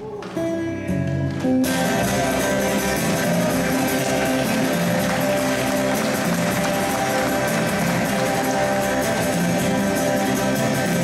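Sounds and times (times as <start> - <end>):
acoustic guitar music: 0.0 - 11.0.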